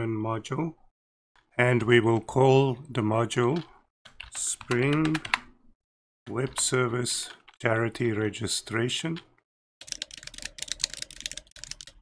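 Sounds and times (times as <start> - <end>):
typing on computer keyboard: 3.6 - 5.5, 9.2 - 12.0.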